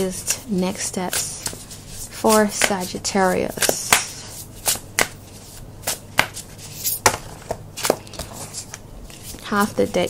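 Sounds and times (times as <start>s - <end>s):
cards shuffling: 1.1s - 10.0s
card edges slapping: 3.5s - 5.2s, 5.8s - 9.5s.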